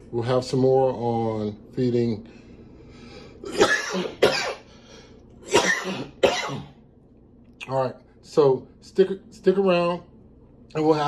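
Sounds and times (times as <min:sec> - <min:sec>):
man coughing: 0:03.4 - 0:04.7, 0:05.4 - 0:06.8.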